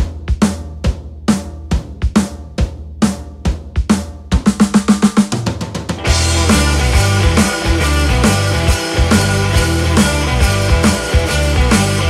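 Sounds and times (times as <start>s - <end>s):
rock drum kit playing: 0.0s - 12.0s
rock band playing: 5.3s - 12.0s.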